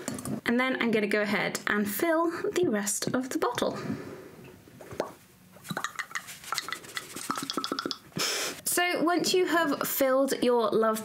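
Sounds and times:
glass jar clinking: 5.8s - 8.0s.

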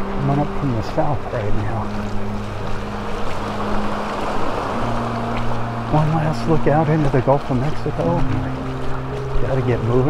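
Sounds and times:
low hum: 0.0s - 10.0s
small waves washing onto sand: 0.0s - 10.0s.

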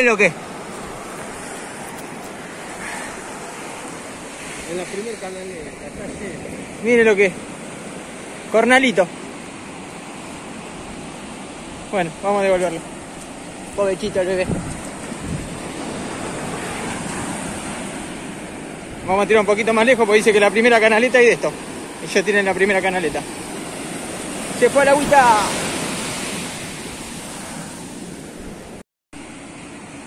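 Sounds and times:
waves breaking on a beach: 0.0s - 30.0s
wind on microphone: 13.8s - 19.2s.

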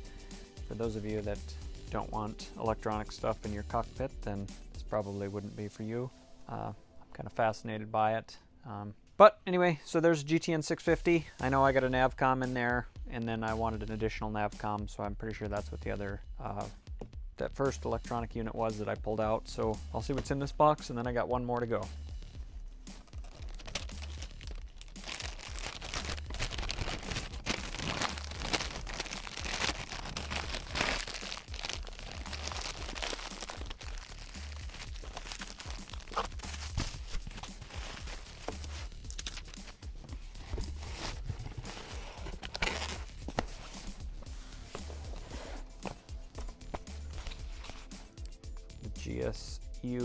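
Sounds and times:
background music with bass pulse: 0.0s - 7.8s, 10.8s - 50.0s
plastic and cardboard crinkling: 23.0s - 47.9s.

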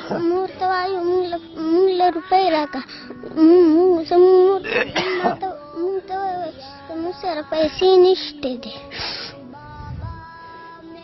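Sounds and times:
child singing: 0.0s - 11.0s.

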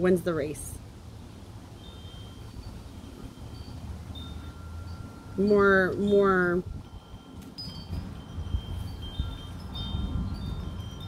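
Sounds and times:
wind rumbling on microphone: 1.0s - 11.0s
wind chimes ringing: 1.7s - 11.0s.

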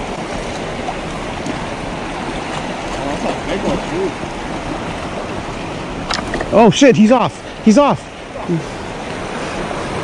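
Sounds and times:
river rushing: 0.0s - 10.0s.

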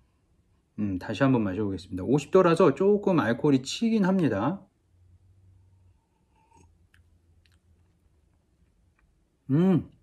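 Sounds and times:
mouth clicks and smacks: 6.4s - 10.0s.

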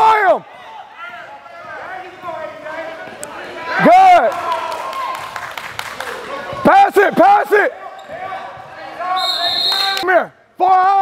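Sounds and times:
referee's whistle: 9.1s - 10.0s.

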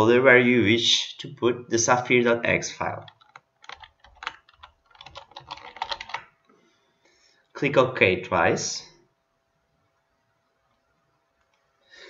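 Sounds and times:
computer keyboard typing: 3.0s - 6.4s.

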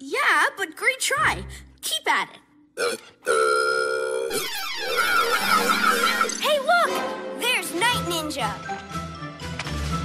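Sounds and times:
warbling electronic trill: 4.3s - 6.4s.

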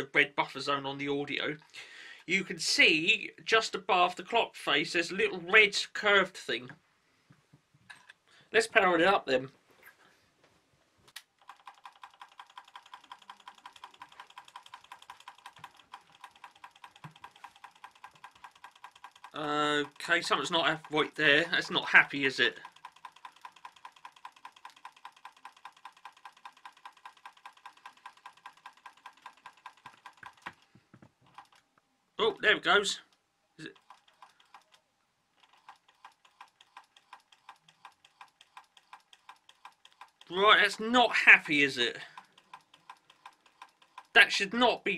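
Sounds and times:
motor mechanism rapid clicking: 11.2s - 30.6s, 31.3s - 31.6s, 33.7s - 34.8s, 35.4s - 40.4s, 41.3s - 44.2s.

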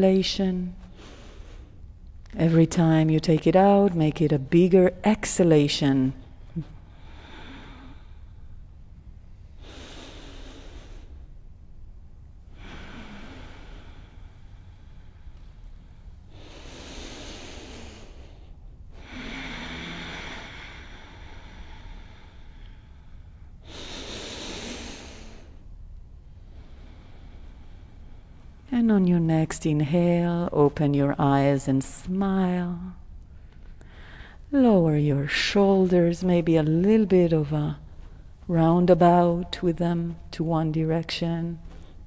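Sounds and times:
low hum: 0.0s - 42.0s
deep breathing: 0.8s - 1.9s, 6.3s - 11.5s, 12.4s - 28.7s, 33.2s - 34.5s.

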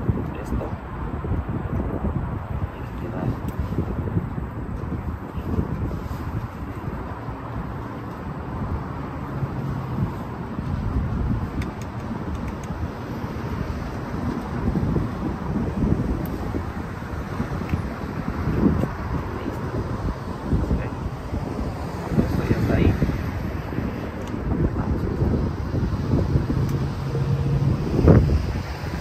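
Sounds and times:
wind buffeting microphone: 0.0s - 29.0s
faint clicks: 11.6s - 12.8s.

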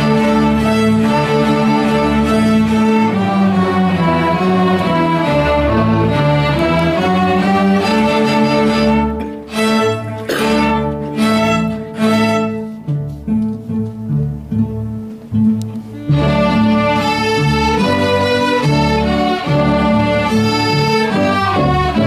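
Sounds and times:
string orchestra playing: 0.0s - 22.0s.

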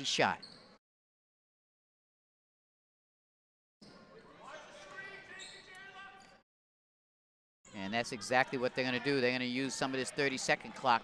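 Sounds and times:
voices echoing in gym: 3.9s - 6.4s, 7.7s - 11.0s.

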